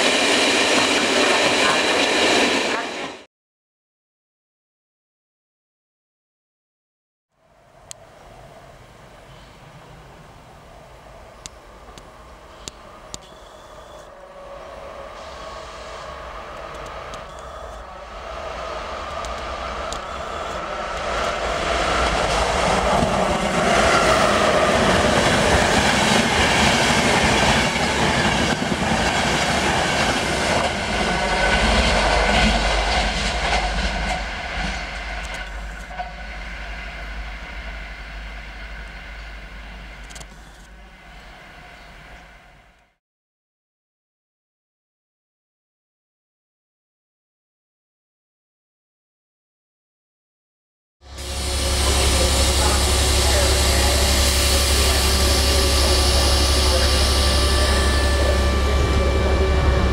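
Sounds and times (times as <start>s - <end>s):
passenger train passing at speed: 0.0s - 3.3s, 7.4s - 43.0s, 51.0s - 59.9s.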